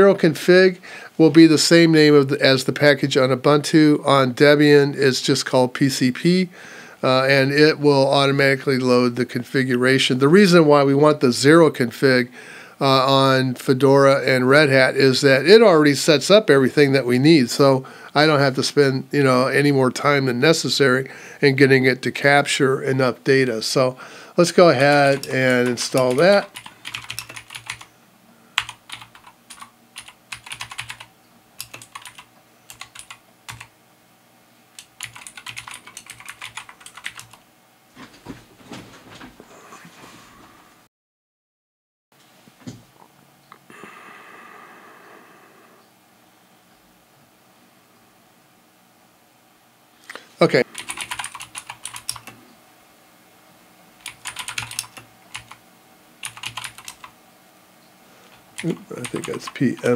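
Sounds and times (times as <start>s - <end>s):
computer keyboard typing: 24.8s - 27.9s, 28.6s - 33.7s, 34.8s - 37.4s, 50.7s - 52.4s, 54.0s - 55.6s, 56.2s - 57.1s, 58.3s - 59.9s.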